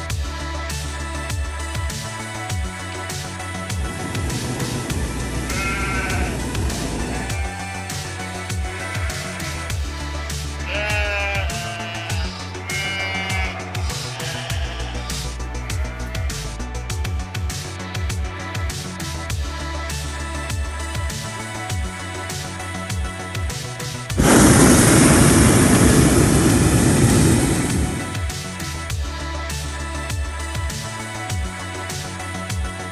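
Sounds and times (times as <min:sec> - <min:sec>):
propane burner blast: 0:03.7 - 0:07.4, 0:24.2 - 0:28.6
sheep bleating: 0:05.2 - 0:09.7, 0:10.6 - 0:16.5.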